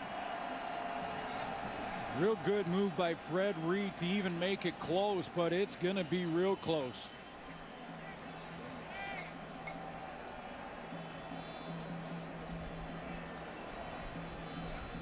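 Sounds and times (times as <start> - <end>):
stadium crowd murmur: 0.0 - 15.0.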